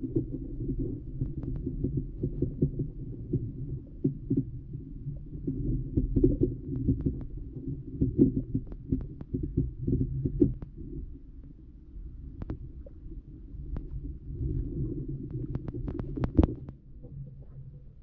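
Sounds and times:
small underwater clicks and knocks: 0.0s - 18.0s
underwater rumble of moving water: 0.0s - 18.0s.

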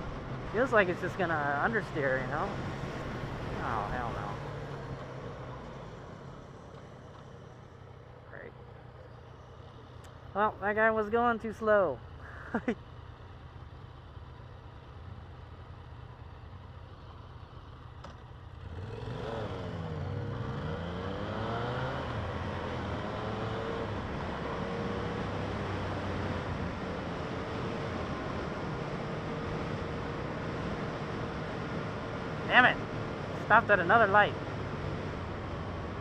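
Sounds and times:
motorcycle engine revving and idling: 12.9s - 36.0s.

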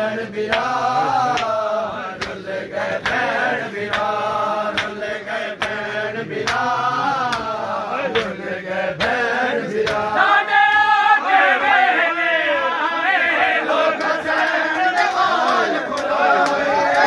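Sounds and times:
men chanting a lament: 0.0s - 17.0s
hands slapping chests: 0.5s - 1.6s, 2.2s - 11.0s, 13.9s - 17.0s.

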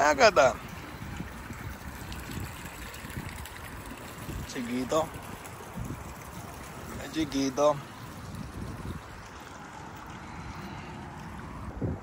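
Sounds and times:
water lapping against boat hulls: 0.0s - 12.0s.

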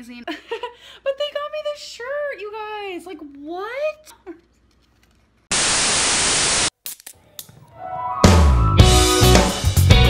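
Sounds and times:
burst of static hiss: 5.5s - 6.8s
rock music with electric guitar: 8.2s - 10.0s.

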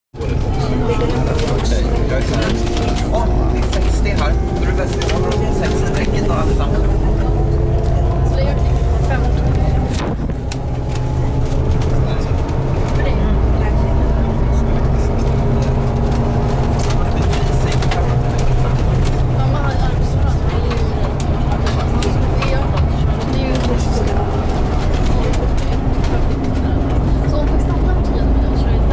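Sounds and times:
bus engine and road rumble: 0.1s - 28.9s
faint drivetrain whine: 0.2s - 28.9s.

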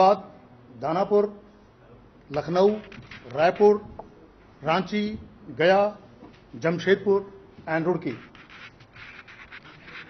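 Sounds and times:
paper rustling: 8.3s - 10.0s.

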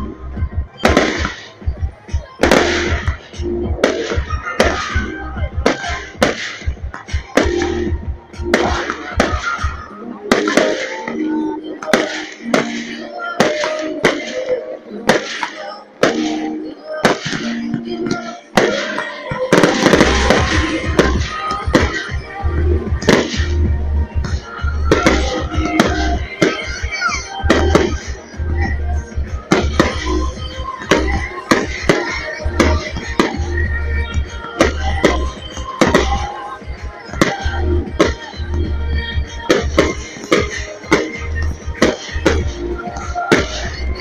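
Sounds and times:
music: 0.0s - 44.0s
fireworks bangs with crackling: 0.6s - 11.2s, 11.8s - 23.7s, 24.3s - 38.4s, 39.0s - 44.0s.

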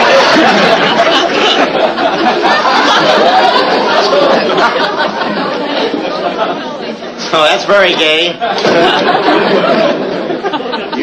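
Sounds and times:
studio audience laughing: 0.0s - 11.0s.

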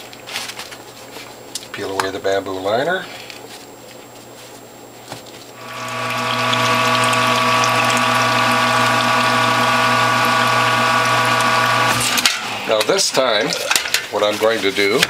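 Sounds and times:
electric juicer press humming: 5.6s - 12.9s.

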